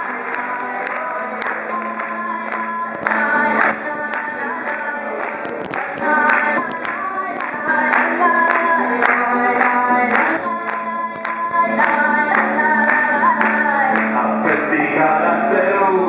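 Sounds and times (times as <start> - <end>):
acoustic guitars strummed: 0.0 - 16.0
voices singing folk song: 0.0 - 16.0.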